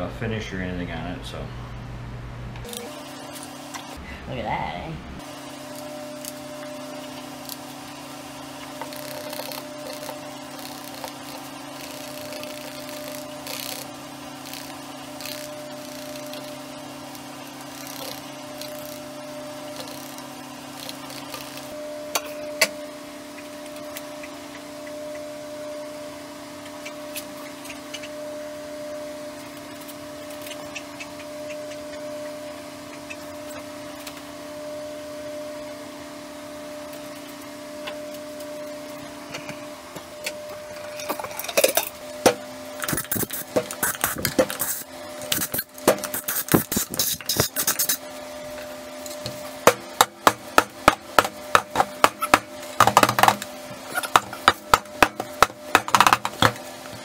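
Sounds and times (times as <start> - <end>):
electrical hum: 0.0 - 57.0
stir sticks scraping plastic cups: 42.8 - 48.0.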